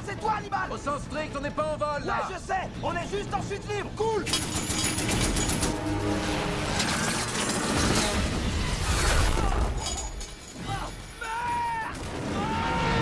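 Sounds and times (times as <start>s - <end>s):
shattering debris: 6.6s - 12.3s
machine-gun fire: 11.7s - 13.0s.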